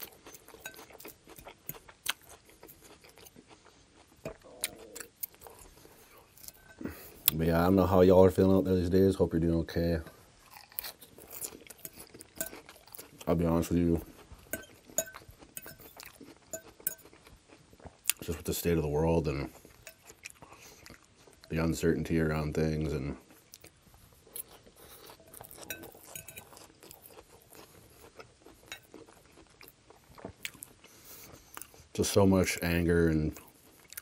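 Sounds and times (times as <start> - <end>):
chewing crisp lettuce: 0.0 - 7.4, 10.4 - 21.8, 22.9 - 34.0.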